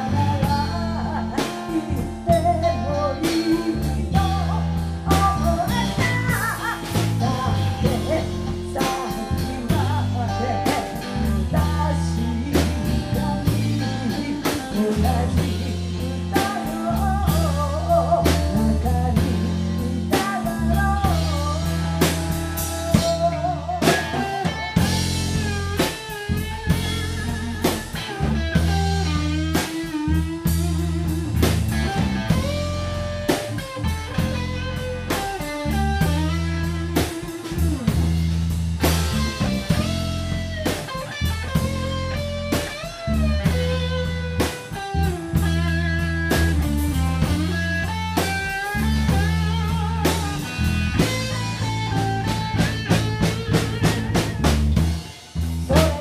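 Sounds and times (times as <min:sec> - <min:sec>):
blues-rock band playing: 0:00.0 - 0:56.0
electric guitar lead: 0:00.0 - 0:56.0.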